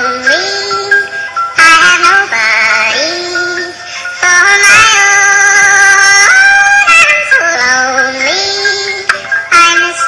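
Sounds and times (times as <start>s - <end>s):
synthesized singing voice: 0.0s - 10.0s.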